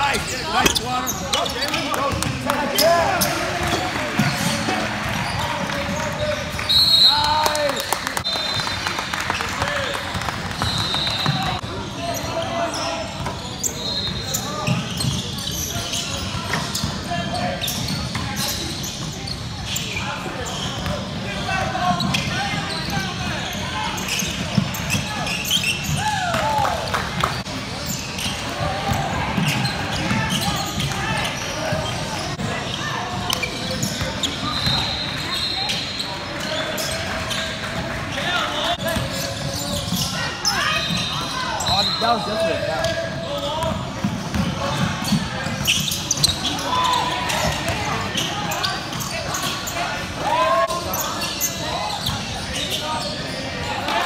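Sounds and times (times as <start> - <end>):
shoe squeaks: 0.0 - 7.6, 10.5 - 26.2, 27.2 - 54.0.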